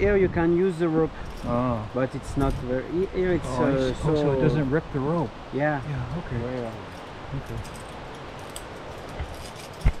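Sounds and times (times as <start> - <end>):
low outdoor hiss: 0.0 - 10.0
climbing gear clinking: 1.1 - 2.7, 6.4 - 10.0.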